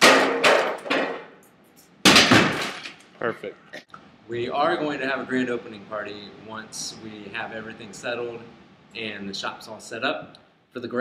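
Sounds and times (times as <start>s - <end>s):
tool smashing into drywall: 0.0s - 1.3s, 2.0s - 3.0s.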